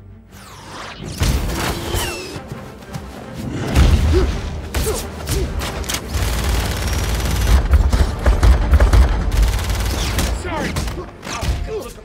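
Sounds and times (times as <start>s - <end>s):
pistols firing rapidly: 5.3s - 11.7s.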